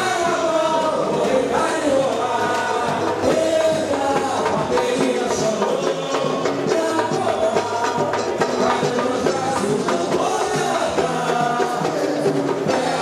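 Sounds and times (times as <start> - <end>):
samba drums and percussion: 0.0 - 13.0
voices singing: 0.0 - 13.0.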